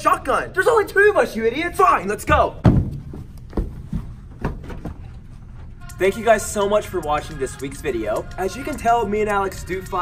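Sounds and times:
low steady rumble: 0.0 - 8.1
soft thumps: 2.6 - 5.2.

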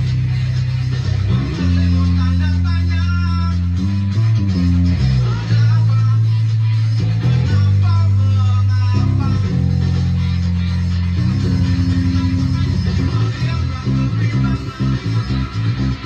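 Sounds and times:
electric bass guitar notes: 0.0 - 16.0
rock band playing: 0.0 - 16.0.

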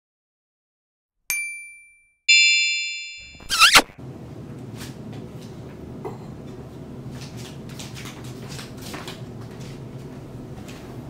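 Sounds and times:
bright chime strikes: 1.3 - 3.5
warbling sweep: 3.4 - 3.9.

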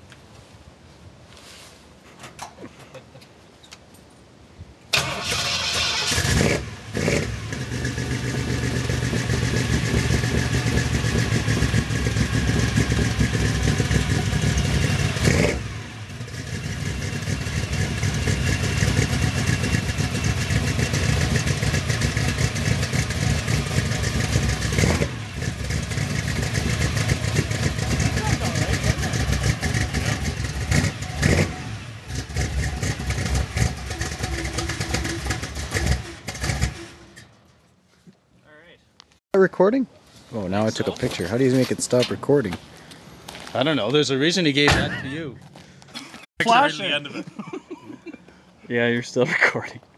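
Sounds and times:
engine revving: 5.0 - 37.2.

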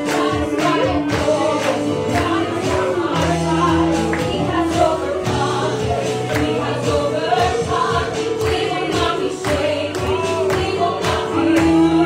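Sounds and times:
congregation singing: 0.0 - 12.0
keyboard and band accompaniment: 0.0 - 12.0.

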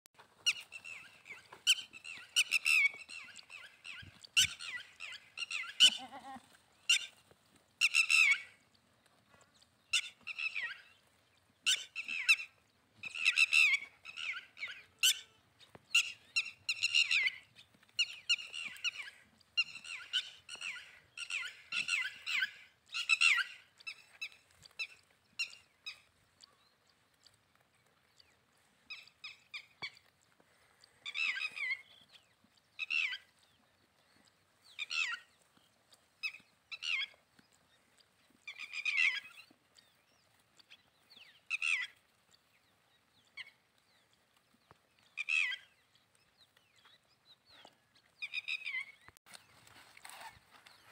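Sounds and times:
birds chirping and calling: 0.2 - 50.9.

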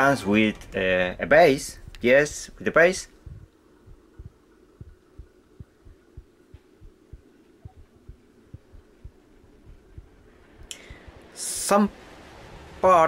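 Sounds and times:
steady low hum: 0.0 - 12.9
dull low thumps: 3.1 - 10.4.

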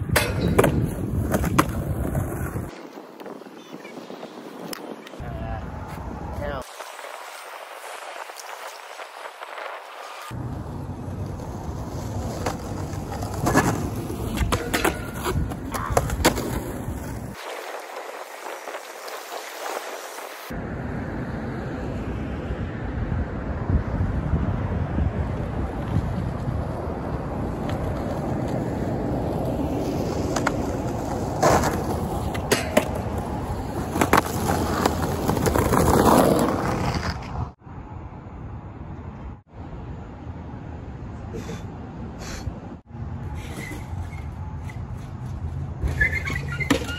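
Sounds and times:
skateboard clacking: 0.0 - 3.9, 10.7 - 19.5, 27.5 - 37.3
skateboard wheels rolling on concrete: 0.0 - 46.9.

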